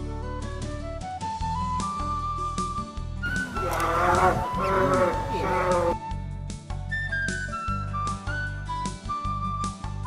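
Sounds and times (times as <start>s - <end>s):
bears calling: 3.3s - 6.0s.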